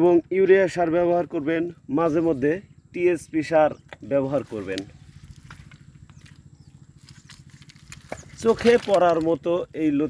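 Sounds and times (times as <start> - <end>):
engine throbbing: 0.0 - 10.0.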